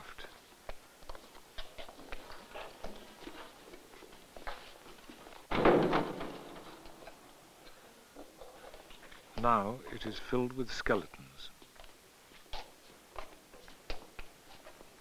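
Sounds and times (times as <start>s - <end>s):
faint footsteps: 0.0s - 10.2s, 11.5s - 15.0s.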